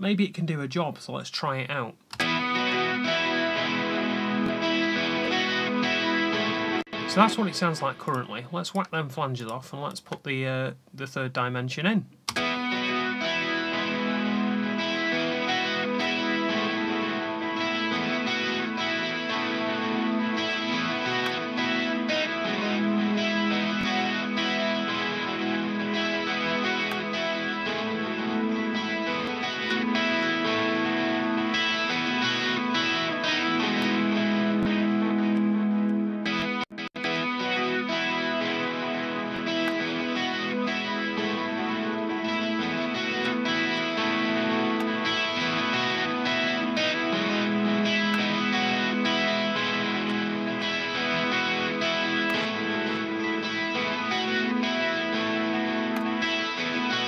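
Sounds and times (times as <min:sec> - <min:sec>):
distorted electric guitar with chorus: 0:01.7 - 0:10.2, 0:12.2 - 0:57.0
buttons being switched: 0:07.9 - 0:10.3.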